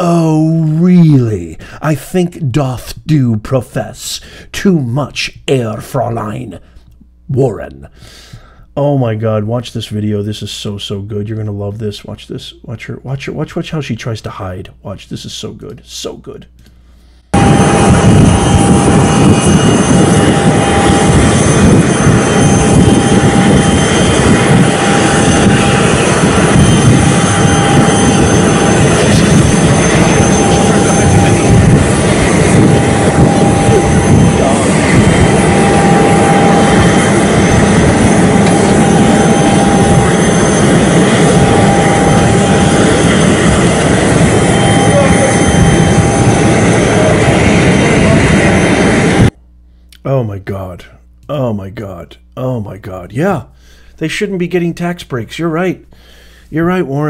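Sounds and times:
jet engines rushing and whining: 0:00.0 - 0:03.1, 0:17.2 - 0:49.4.

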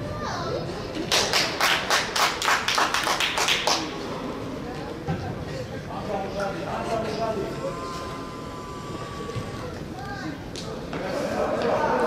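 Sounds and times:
hand clapping: 0:01.1 - 0:03.9.

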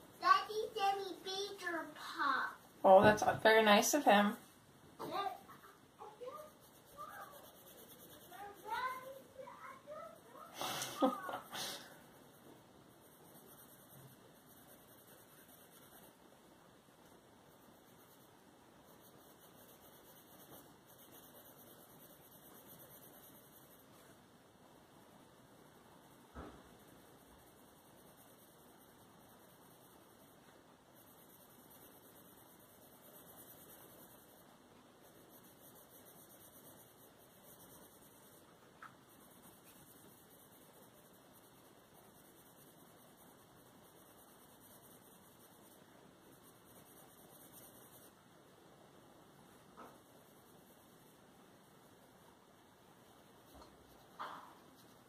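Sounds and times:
coloured pencil scratching on paper: 0:00.0 - 0:24.2, 0:25.6 - 0:48.2, 0:49.4 - 0:55.0
low room hiss: 0:00.0 - 0:55.0.

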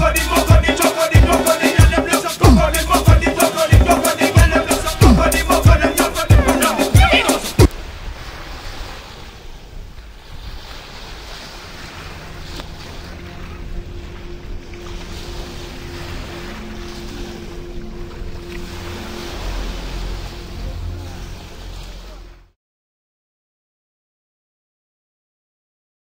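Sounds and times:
surf washing onto beach: 0:00.1 - 0:22.3.

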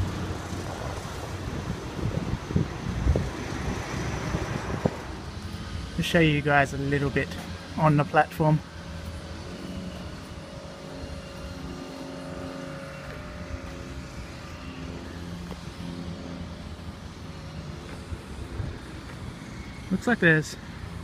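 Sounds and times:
engine drone with held tones: 0:00.0 - 0:21.0.

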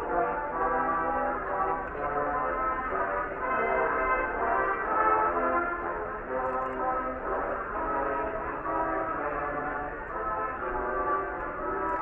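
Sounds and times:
brass band playing a carol: 0:00.0 - 0:12.0.

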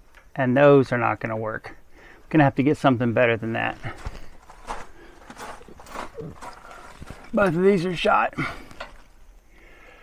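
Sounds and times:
soft footsteps: 0:03.4 - 0:09.2.

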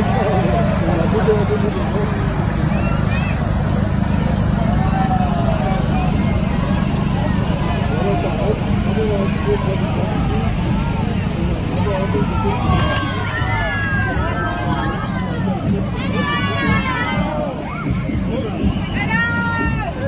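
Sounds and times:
spectators calling out: 0:00.0 - 0:20.0
tractor diesel engine rumbling: 0:00.0 - 0:20.0.

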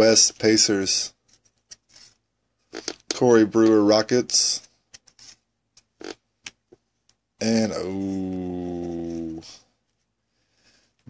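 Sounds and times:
trading cards being handled: 0:00.0 - 0:11.0.

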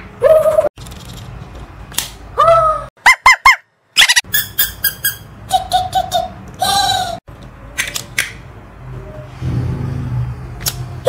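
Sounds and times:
plastic toy squeaks: 0:03.1 - 0:05.3.

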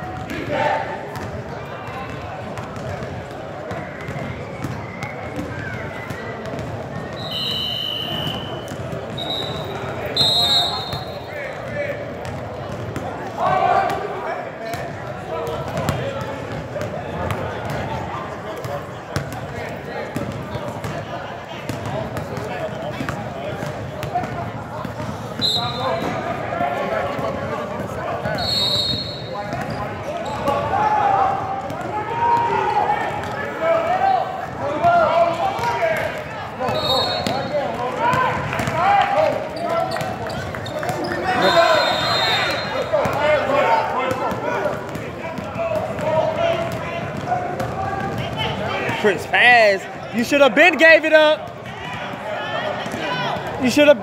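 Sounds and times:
basketballs bouncing on a court: 0:00.0 - 0:00.5, 0:01.1 - 0:49.2
spectators' voices and shouts: 0:00.0 - 0:54.0.

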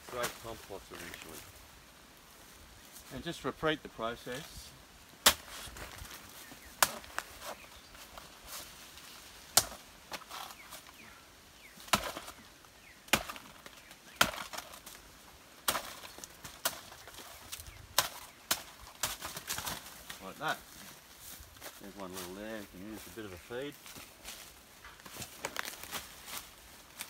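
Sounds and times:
machete chopping banana stem: 0:05.2 - 0:05.6, 0:06.8 - 0:07.2, 0:09.5 - 0:09.8, 0:13.1 - 0:13.5, 0:14.2 - 0:14.7.

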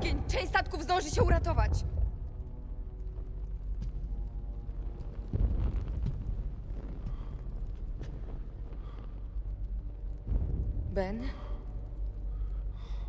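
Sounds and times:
deep low rumble: 0:00.0 - 0:13.0
faint music: 0:00.0 - 0:13.0.

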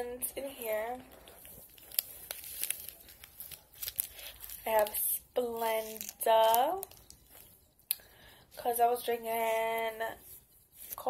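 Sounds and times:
paper packets crinkling: 0:00.6 - 0:07.7.

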